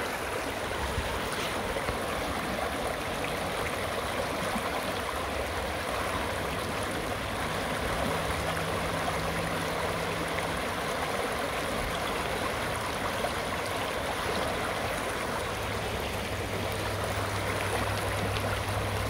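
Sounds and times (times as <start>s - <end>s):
water rushing over rocks: 0.0s - 19.0s.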